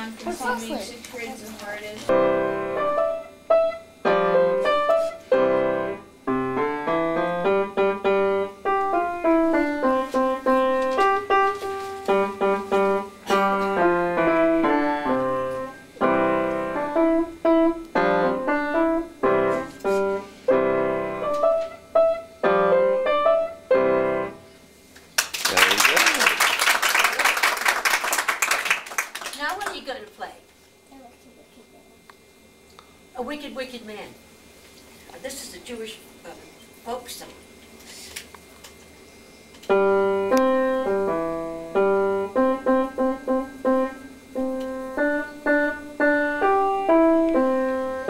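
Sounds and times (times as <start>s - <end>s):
child playing piano: 2.1s - 24.4s, 39.7s - 48.0s.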